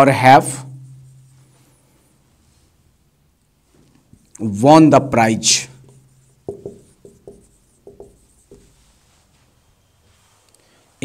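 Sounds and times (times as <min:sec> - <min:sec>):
marker pen writing on whiteboard: 0:05.5 - 0:09.1.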